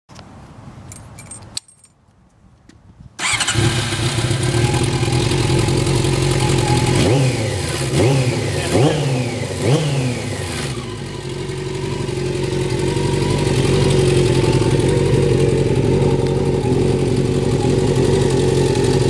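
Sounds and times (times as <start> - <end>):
motorcycle engine starting and revving: 3.2 - 19.0.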